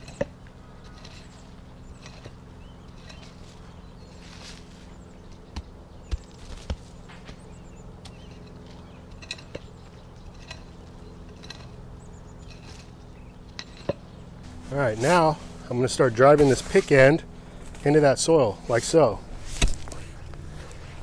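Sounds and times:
pick scraping mulch and soil: 0.0s - 21.0s
steady low hum: 0.0s - 21.0s.

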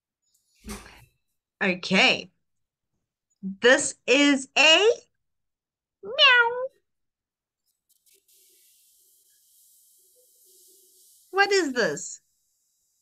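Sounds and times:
person imitating cat meow: 6.0s - 6.7s.

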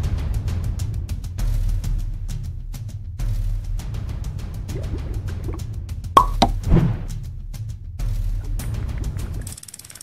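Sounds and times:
background music: 0.0s - 9.6s
cartoon pops: 6.2s - 6.6s.

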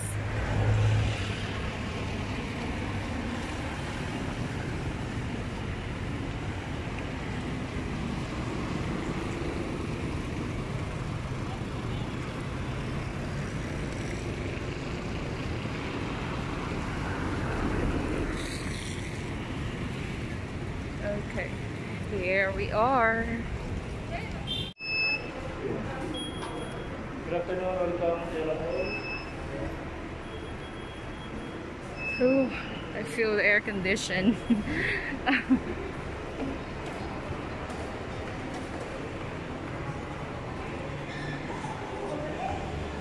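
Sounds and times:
cars passing: 0.0s - 43.0s.

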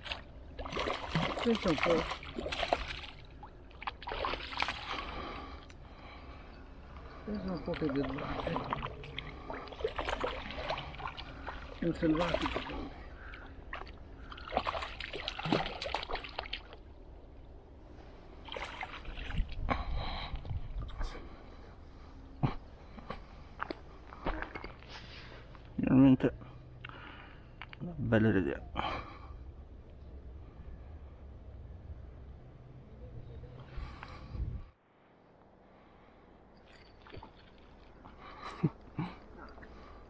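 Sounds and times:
fish splashing in water: 0.0s - 5.4s, 7.8s - 16.8s
faint low rumble: 15.3s - 40.0s.

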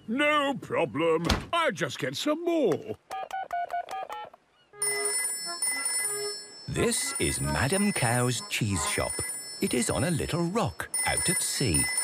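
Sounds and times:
phone keypad beeps: 4.8s - 10.2s, 10.8s - 12.0s
phone ringing: 4.8s - 12.0s.

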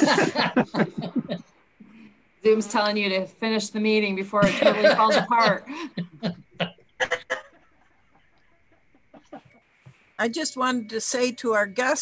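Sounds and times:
person laughing: 0.0s - 1.4s, 4.4s - 7.5s, 9.0s - 9.6s.

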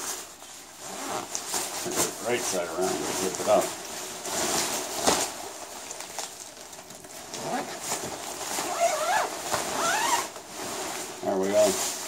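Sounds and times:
nylon fabric rustling: 0.0s - 12.0s.

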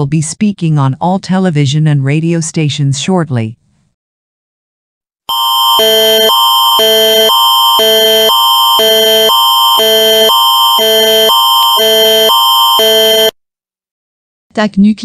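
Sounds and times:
electronic alert alarm: 5.3s - 13.4s.

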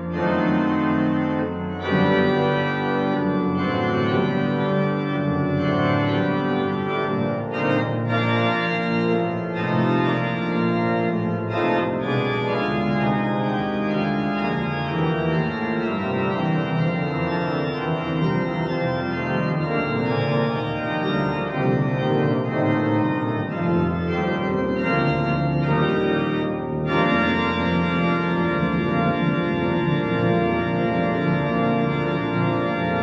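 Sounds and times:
organ playing chords: 0.0s - 33.0s.

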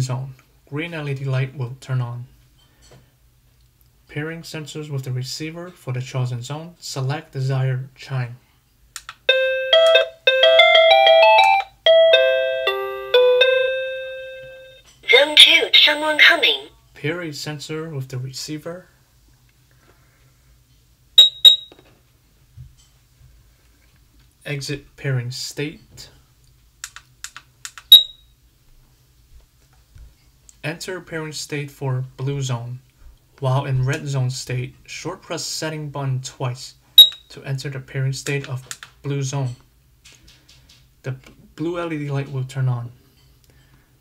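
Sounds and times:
electronic chime tones: 9.3s - 14.8s, 21.2s - 21.7s, 27.9s - 28.1s
short high beep: 21.2s - 21.8s, 27.9s - 28.2s, 37.0s - 37.2s.

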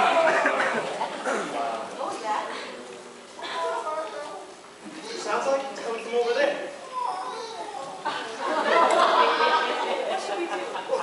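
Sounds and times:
actors speaking: 0.0s - 11.0s.

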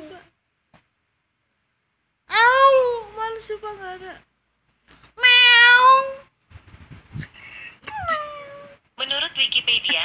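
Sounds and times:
cat meow through phone speaker: 5.2s - 6.3s.

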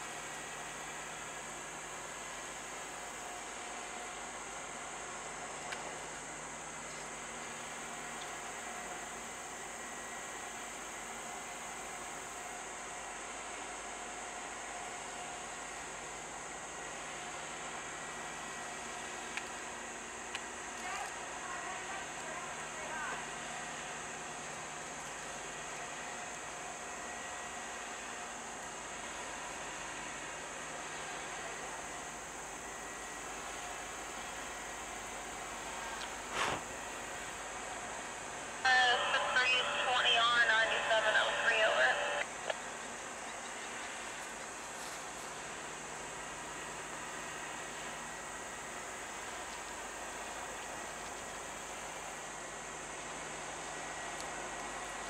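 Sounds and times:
steady hiss: 35.2s - 37.4s
garbled scanner radio voice: 38.7s - 42.2s.

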